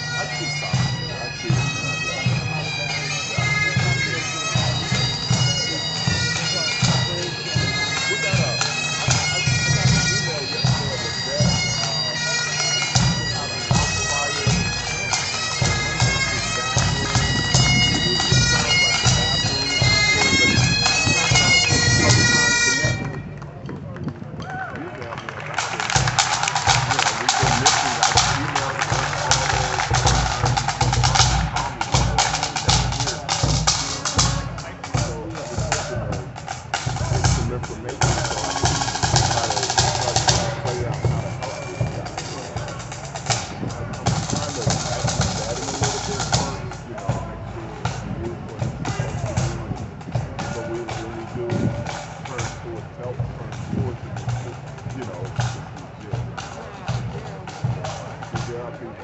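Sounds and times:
bagpipes playing: 0.0s - 23.6s, 25.4s - 59.0s
snare and bass drums: 0.0s - 24.6s, 25.4s - 59.0s.

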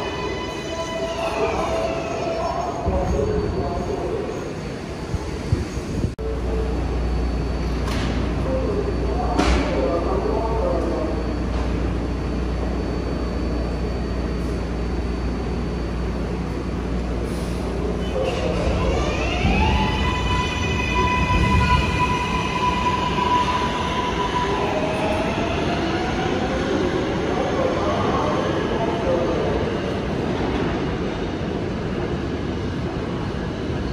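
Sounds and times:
low train rumble: 0.0s - 33.9s
subway train electric whine: 0.0s - 33.9s.

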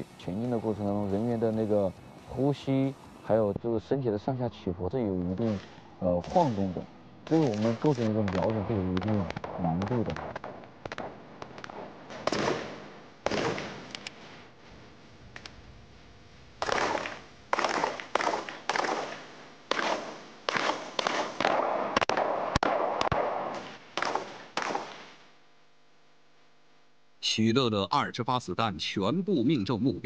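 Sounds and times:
gunshots with echo: 5.5s - 13.9s, 16.6s - 25.2s.

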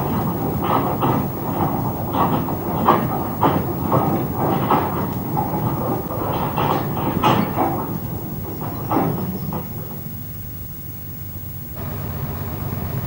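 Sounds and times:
metal clanks and knocks: 0.0s - 10.5s
train rumbling: 0.0s - 11.0s.

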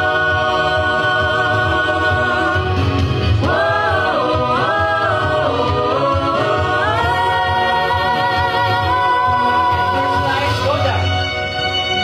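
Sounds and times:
group of people singing: 0.0s - 11.0s.

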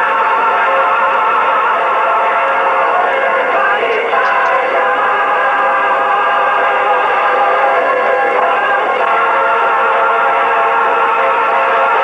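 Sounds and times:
music with singing: 0.0s - 12.0s.

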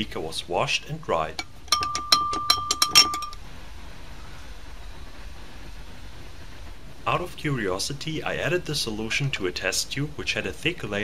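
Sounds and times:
faint steady hiss: 0.0s - 11.0s
glass beaker clinking: 1.4s - 3.4s
ringing glass tone: 1.4s - 3.4s.

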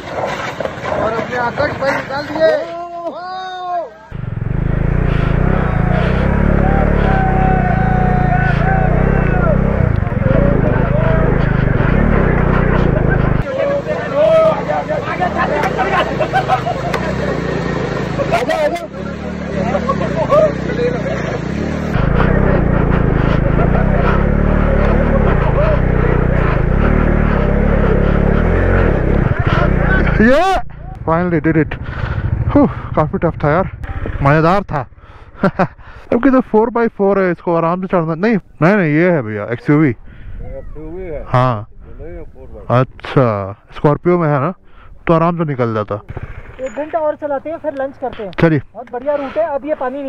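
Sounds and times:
people calling and shouting: 0.0s - 32.9s, 39.7s - 42.6s
vehicle engines rumbling: 0.0s - 50.0s.

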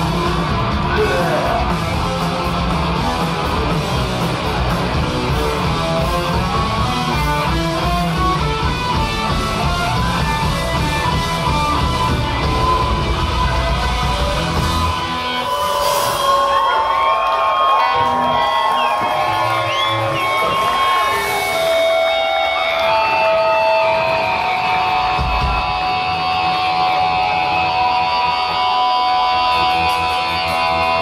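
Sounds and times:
electric guitar feedback: 0.0s - 16.8s, 17.9s - 31.0s
crowd shouting and whooping: 0.0s - 31.0s
live punk band: 0.0s - 31.0s.

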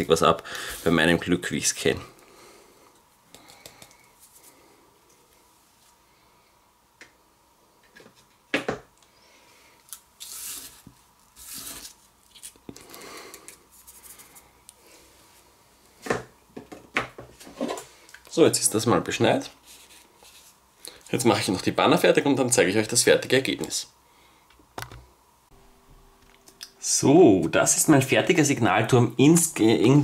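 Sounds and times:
faint rustling and scratching: 19.6s - 20.6s.

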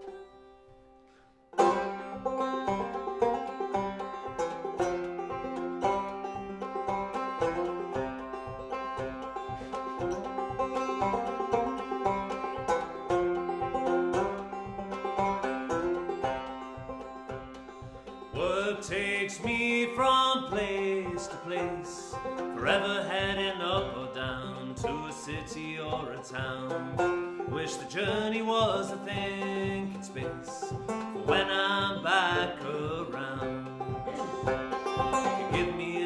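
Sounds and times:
fingerpicked banjo: 0.0s - 36.0s.

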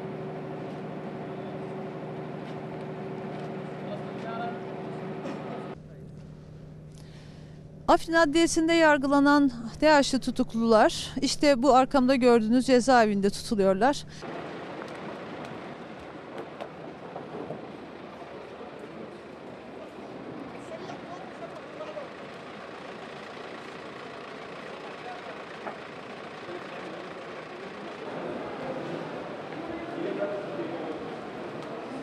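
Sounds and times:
outdoor background hiss: 0.0s - 32.0s.

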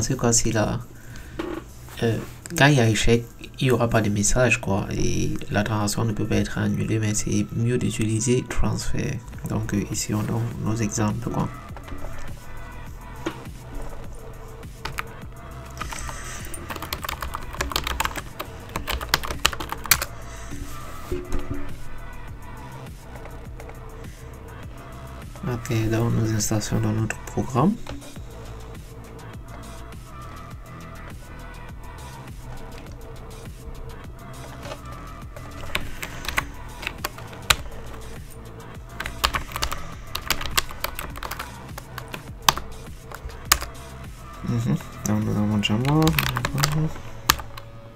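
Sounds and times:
typing on computer keyboard: 14.8s - 15.1s, 15.7s - 20.1s, 35.4s - 38.0s, 39.0s - 43.7s, 45.0s - 47.6s.

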